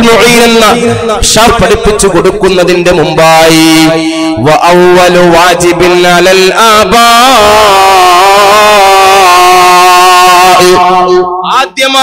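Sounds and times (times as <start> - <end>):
man chanting a long note: 0.0 - 11.6.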